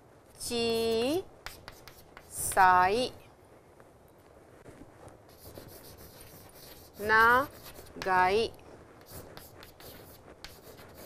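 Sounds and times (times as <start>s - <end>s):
chalk scratching on chalkboard: 0.6s - 2.7s, 5.3s - 11.0s.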